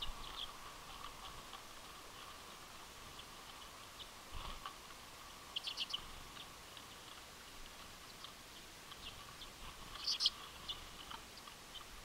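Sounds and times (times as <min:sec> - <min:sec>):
birds chipping: 0:00.0 - 0:12.0.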